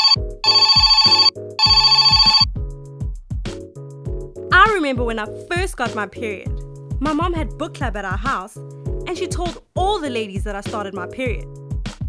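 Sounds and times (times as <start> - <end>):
telephone ringing in trilling bursts: 0.0 - 2.5
background music with bass line: 2.5 - 12.0.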